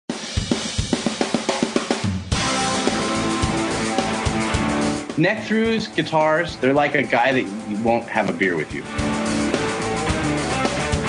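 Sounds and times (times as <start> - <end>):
drum fill: 0.1 - 11.0.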